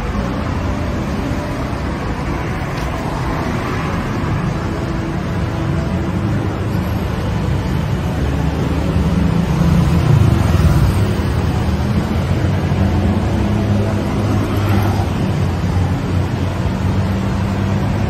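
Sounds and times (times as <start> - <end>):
road noise: 0.0 - 18.0
vehicle engines humming: 0.0 - 18.0.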